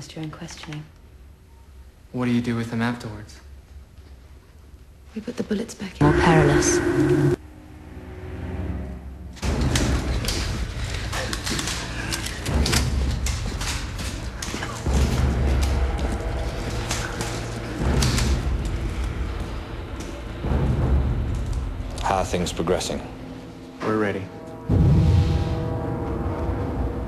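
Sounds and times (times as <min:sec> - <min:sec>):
dense sustained orchestral bed: 0:06.0 - 0:27.0
heavy low boom: 0:24.7 - 0:27.0.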